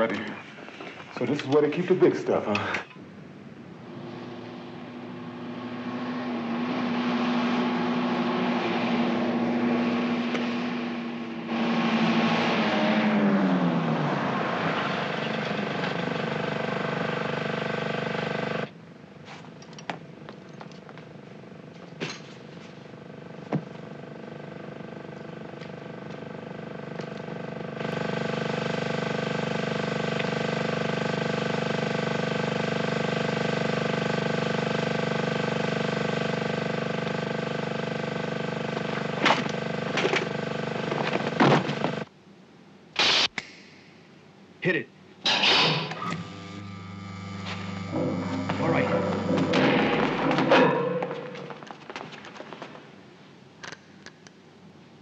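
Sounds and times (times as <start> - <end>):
vehicle engine pulling off: 3.9 - 18.6
steady drone: 45.3 - 51.9.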